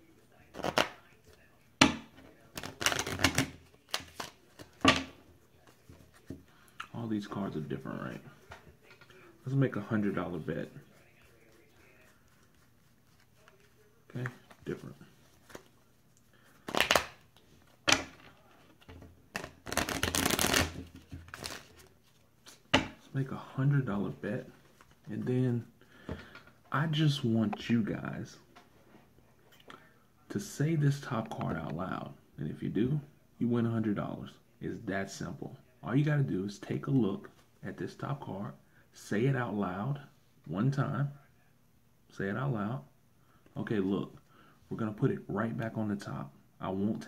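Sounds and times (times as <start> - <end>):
playing cards shuffling: 0.5 - 1.0, 2.5 - 4.8, 11.7 - 15.8, 16.5 - 22.7
playing cards shuffling clicks: 0.6 - 0.9, 2.6 - 4.4, 16.6 - 17.2, 19.3 - 21.7.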